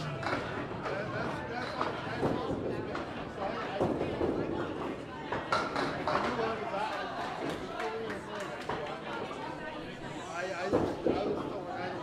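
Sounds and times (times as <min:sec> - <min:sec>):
people chattering: 0:00.0 - 0:12.0.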